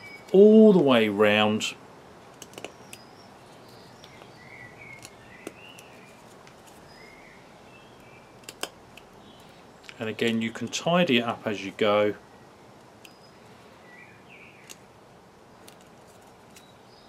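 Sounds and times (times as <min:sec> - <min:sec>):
low steady background: 0:00.0 - 0:17.0.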